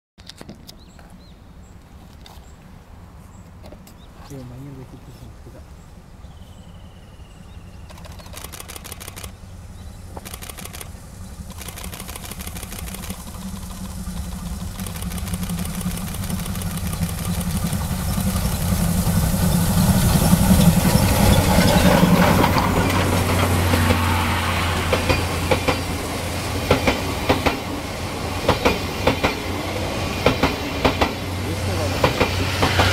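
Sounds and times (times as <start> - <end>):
steam locomotive passing: 4.5 - 32.9
train wheels clickety-clack: 7.9 - 9.4, 10.2 - 32.9.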